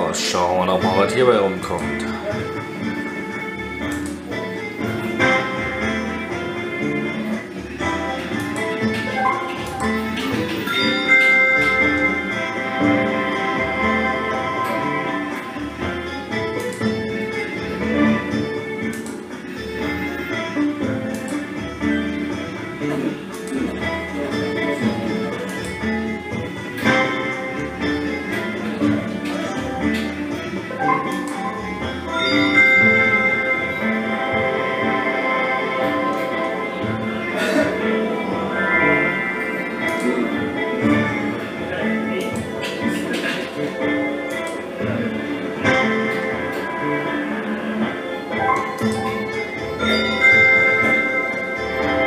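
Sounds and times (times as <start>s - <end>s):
looping game music with beat: 0.0s - 52.0s.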